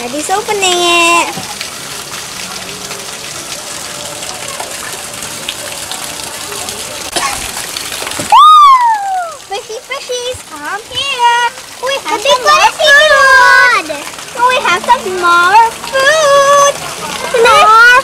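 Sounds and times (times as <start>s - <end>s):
running water: 0.0s - 18.0s.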